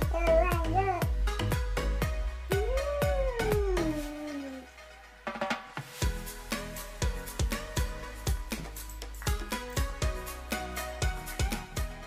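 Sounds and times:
background music with a beat: 0:00.0 - 0:12.0
person humming mmm: 0:02.5 - 0:04.8.

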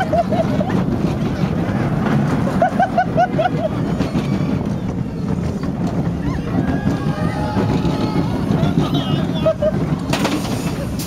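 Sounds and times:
roller coaster train rumbling on track: 0:00.0 - 0:11.0
wind buffeting microphone: 0:00.0 - 0:11.0.

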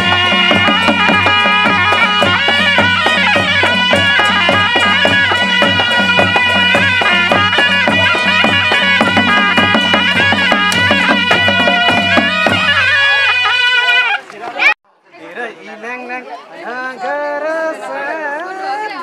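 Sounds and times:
drum strokes: 0:00.0 - 0:13.6
reed pipes playing melody: 0:00.0 - 0:14.3.

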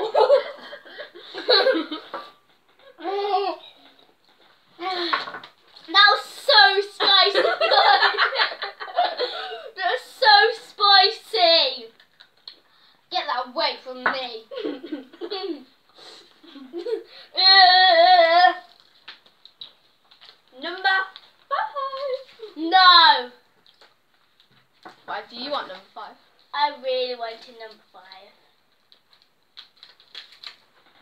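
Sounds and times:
girls giggling and squealing: 0:07.0 - 0:09.8.

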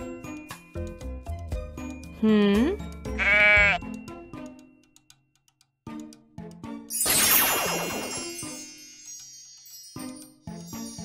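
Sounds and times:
light background music: 0:00.0 - 0:11.0
goat bleating: 0:03.1 - 0:03.9.

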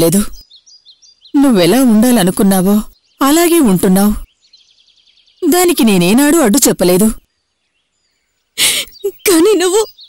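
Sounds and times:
woman speaking: 0:00.0 - 0:00.4, 0:01.4 - 0:04.3, 0:05.4 - 0:07.2, 0:08.6 - 0:10.0
woman's tearful gasp: 0:08.6 - 0:09.0.

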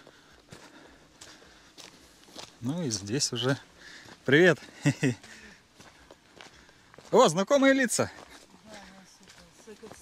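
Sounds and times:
footsteps on dry leaves: 0:00.0 - 0:10.0.

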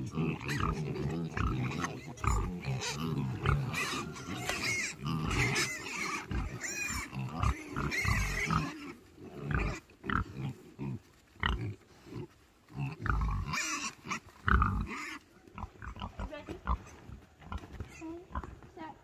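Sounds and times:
pigs grunting and squealing: 0:00.0 - 0:18.7.

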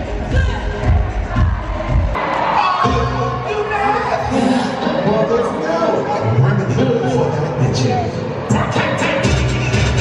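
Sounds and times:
concert music with heavy bass: 0:00.0 - 0:10.0
crowd screaming and cheering: 0:00.0 - 0:10.0.

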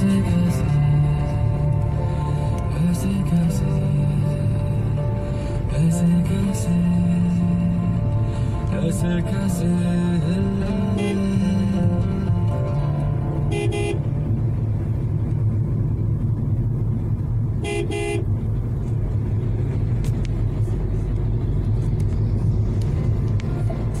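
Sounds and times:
background music: 0:00.0 - 0:18.2, 0:20.5 - 0:24.0
car driving on wet road: 0:00.0 - 0:24.0
car horn toots: 0:10.7 - 0:11.4, 0:13.4 - 0:14.2, 0:17.6 - 0:18.4.

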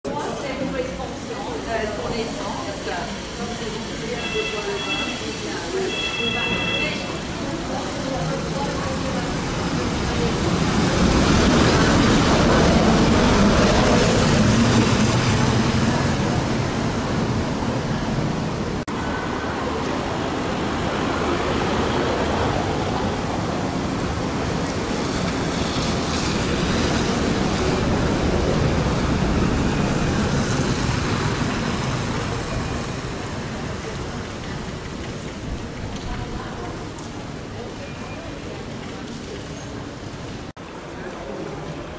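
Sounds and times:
buses passing on wet cobblestones: 0:00.1 - 0:41.9.

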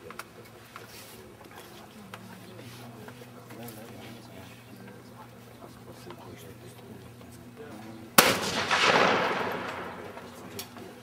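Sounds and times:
shotgun shot with echo: 0:08.2 - 0:10.4.

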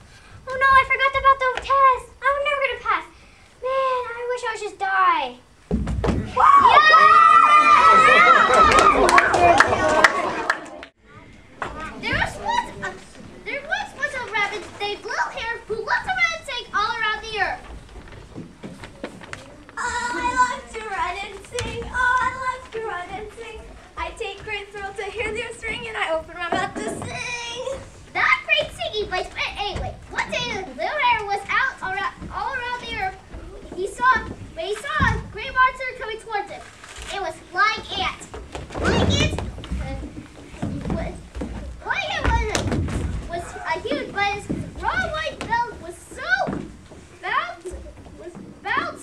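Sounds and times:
children's voices: 0:00.0 - 0:05.5, 0:06.3 - 0:49.0
footfalls on wooden stage: 0:05.6 - 0:06.6, 0:37.8 - 0:47.1.

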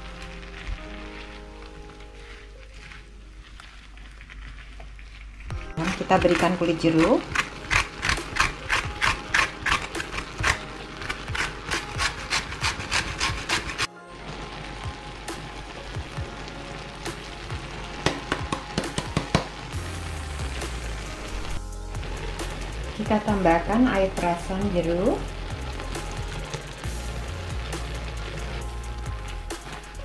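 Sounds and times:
rind grated on metal grater: 0:05.6 - 0:13.9.

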